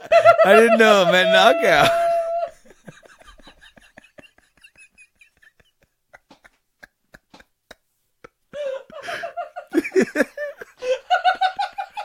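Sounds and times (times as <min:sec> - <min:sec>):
man laughing: 0:00.0 - 0:12.0.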